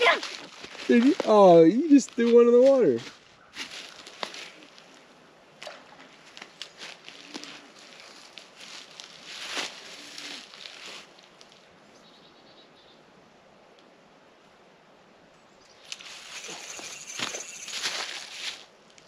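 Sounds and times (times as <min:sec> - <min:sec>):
rustling in dry grass: 0:00.0 - 0:05.1, 0:06.1 - 0:11.7, 0:15.8 - 0:19.0.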